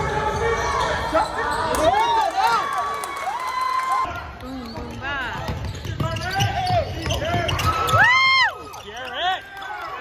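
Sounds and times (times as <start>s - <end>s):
sneakers squeaking: 0.0s - 2.2s, 4.4s - 9.6s.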